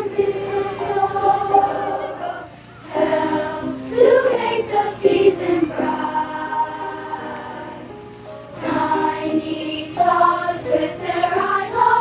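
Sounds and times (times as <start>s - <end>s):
children's choir singing: 0.0s - 12.0s
keyboard accompaniment: 0.0s - 12.0s.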